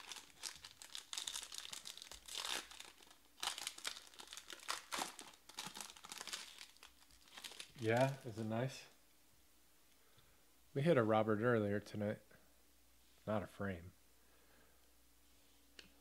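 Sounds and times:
foil wrapper tearing and crinkling: 0.0 - 8.2.

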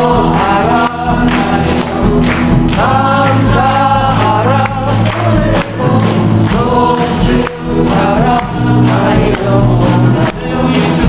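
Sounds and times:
choir singing gospel song: 0.0 - 11.0
instrumental accompaniment: 0.0 - 11.0.

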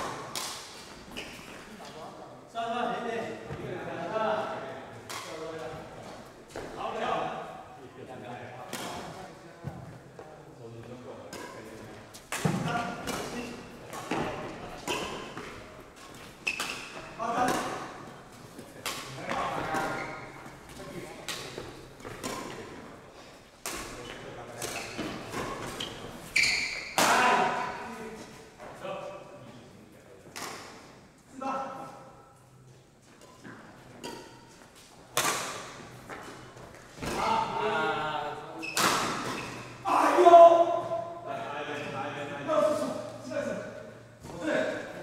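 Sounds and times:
players' voices: 1.6 - 32.5, 35.2 - 45.0
rackets striking shuttlecock: 35.1 - 36.2.

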